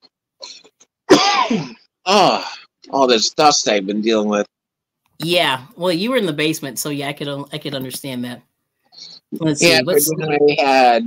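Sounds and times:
man coughing: 0.4 - 2.6.

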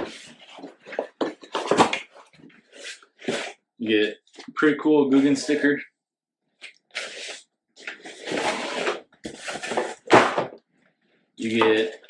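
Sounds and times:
cardboard rustling and scraping: 0.0 - 3.6, 7.0 - 10.6.

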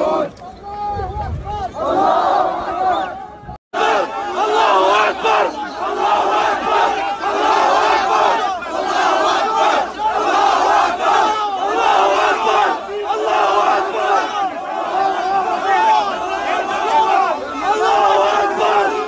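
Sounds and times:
crowd shouting and yelling: 0.0 - 19.0.

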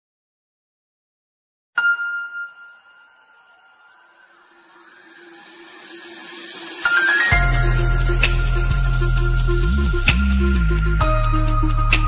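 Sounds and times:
ringing chime: 1.8 - 7.8
rising hiss: 4.7 - 9.4.

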